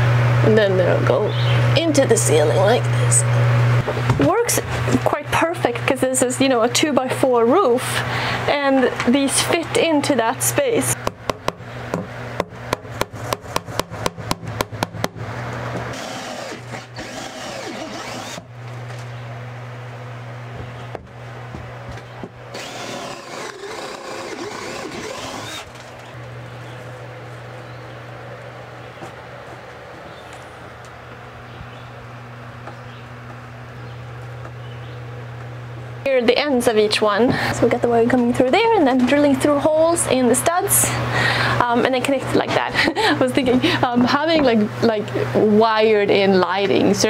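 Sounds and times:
cordless drill boring through wood: 15.9s - 18.5s, 22.5s - 25.8s.

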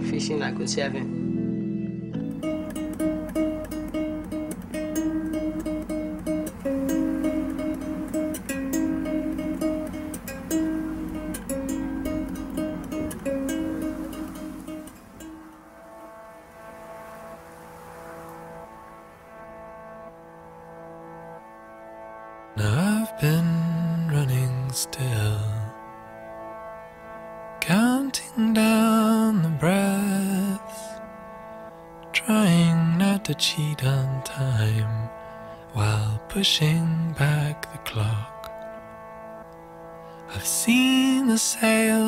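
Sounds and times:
plucked string music: 0.0s - 42.0s.

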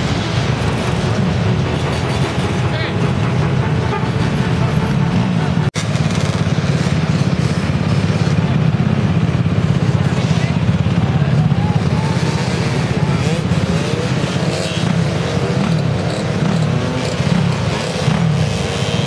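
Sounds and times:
crowd voices: 0.0s - 18.4s
dirt bike engines revving: 0.0s - 19.0s.

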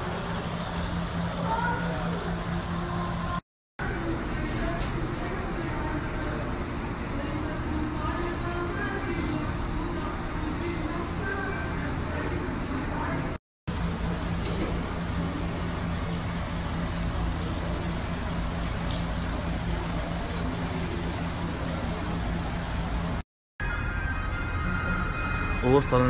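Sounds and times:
water fountain splashing: 0.0s - 3.4s, 13.7s - 23.2s.

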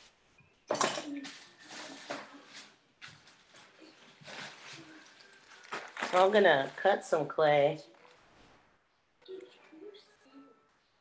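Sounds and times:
plastic wrapping crinkling: 1.2s - 8.8s.

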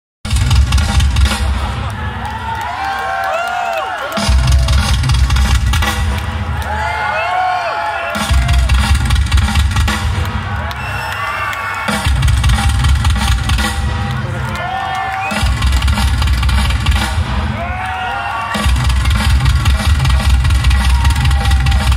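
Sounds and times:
live rock band playing: 8.2s - 10.4s, 11.7s - 14.4s, 18.5s - 21.9s.

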